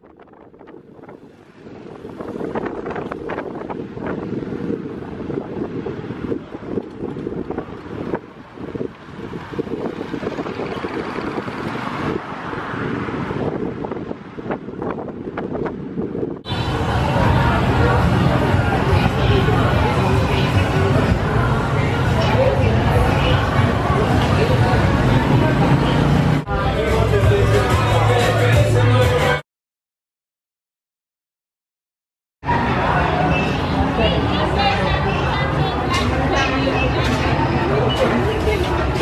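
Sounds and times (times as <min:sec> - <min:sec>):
wind rushing over microphone: 0:00.0 - 0:26.6
road and engine noise: 0:00.0 - 0:29.4, 0:32.4 - 0:39.0
street chatter: 0:00.1 - 0:29.4, 0:32.4 - 0:39.0.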